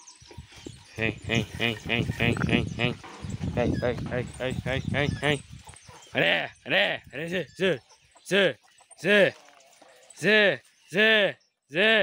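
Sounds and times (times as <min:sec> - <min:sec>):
man calling calves: 0:00.9 - 0:09.4, 0:10.2 - 0:12.0.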